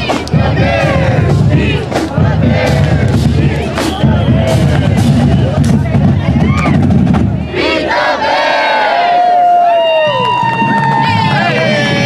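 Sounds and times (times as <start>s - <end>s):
marching band drums: 0.0s - 8.6s
crowd shouting a chant: 0.0s - 9.6s, 11.0s - 12.0s.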